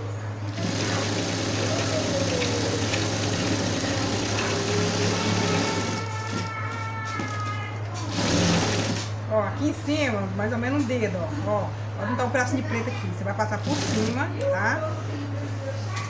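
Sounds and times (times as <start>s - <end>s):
motor hum: 0.0s - 10.4s
sewing machine stitching: 0.5s - 6.6s, 8.0s - 9.1s, 13.6s - 14.3s.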